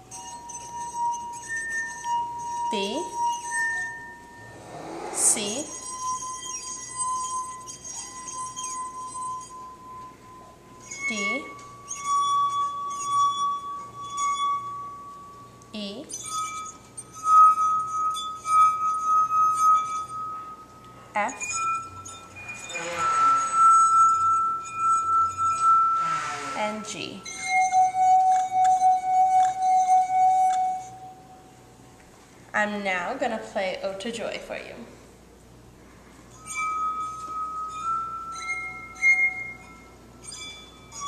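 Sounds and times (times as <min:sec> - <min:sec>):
lower glass tone: 0:00.0 - 0:32.0, 0:35.6 - 0:41.0
singing glass high tone: 0:00.0 - 0:32.0, 0:35.8 - 0:41.0.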